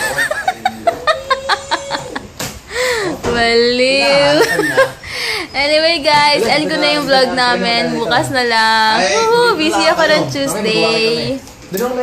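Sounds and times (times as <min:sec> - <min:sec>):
woman laughing: 0:00.0 - 0:02.3, 0:04.2 - 0:05.0.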